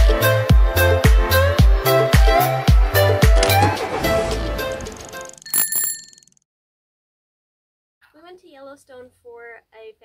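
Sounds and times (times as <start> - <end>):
music: 0.0 - 5.4
bicycle bell ringing: 5.3 - 6.4.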